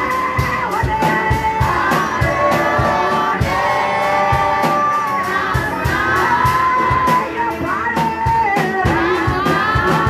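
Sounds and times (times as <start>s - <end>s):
congregation singing: 0.0s - 10.0s
steady drum beat: 0.0s - 10.0s
woman singing through a microphone: 0.0s - 10.0s.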